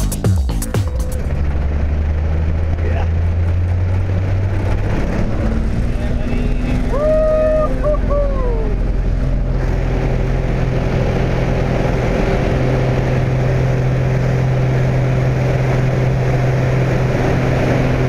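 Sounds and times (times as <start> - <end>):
plane engine and propeller: 0.0 - 18.0
voice calling out: 6.9 - 8.8.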